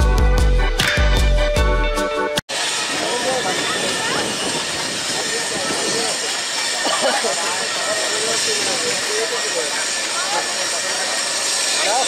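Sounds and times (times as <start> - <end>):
distant voices chattering: 2.5 - 12.0
hiss of train and station noise: 2.5 - 12.0.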